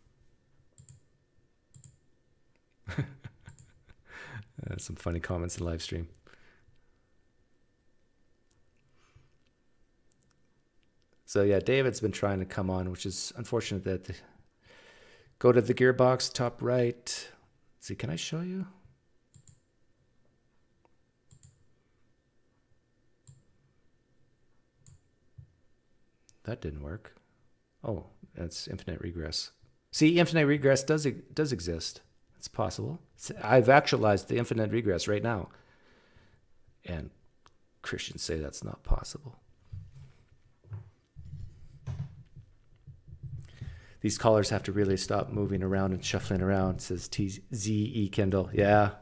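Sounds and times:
computer mouse clicks: 0.8s - 1.0s, 1.7s - 2.0s, 19.3s - 19.6s, 21.3s - 21.6s, 23.2s - 23.4s, 24.8s - 25.1s
person chuckling: 2.8s - 4.8s.

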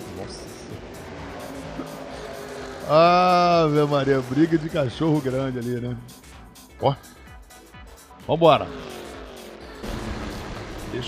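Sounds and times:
background music: 0.0s - 11.0s
racing car engines: 0.0s - 11.0s
man's voice: 2.8s - 7.2s, 10.8s - 11.0s.

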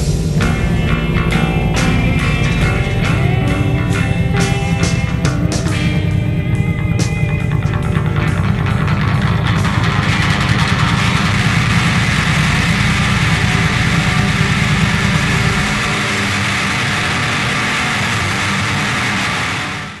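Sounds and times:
motorcycle engine idling: 0.0s - 18.1s.

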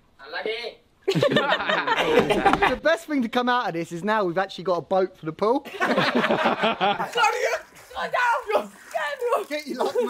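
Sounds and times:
men talking: 0.3s - 10.0s
men laughing: 1.1s - 2.8s, 5.6s - 7.8s, 9.5s - 10.0s.

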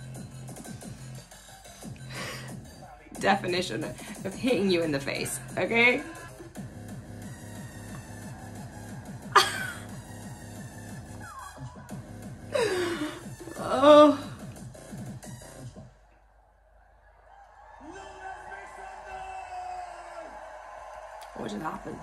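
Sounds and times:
electronic dance music: 0.0s - 12.5s
woman laughing and gasping: 9.4s - 9.9s, 12.5s - 14.4s.

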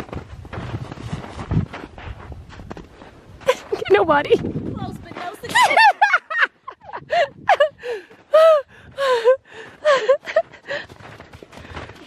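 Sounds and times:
woman laughing: 5.4s - 10.8s.

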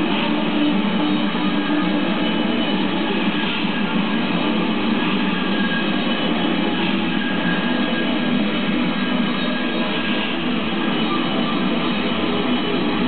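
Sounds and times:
distorted electric guitar: 0.0s - 13.0s
drums: 0.0s - 13.0s.

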